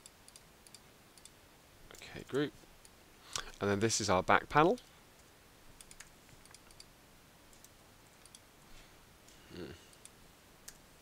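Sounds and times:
computer mouse and keyboard clicks: 5.8s - 6.9s, 7.5s - 8.4s.

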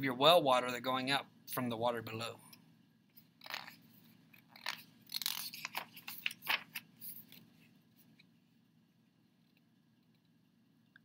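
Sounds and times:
paper pages rustling: 3.5s - 8.2s.

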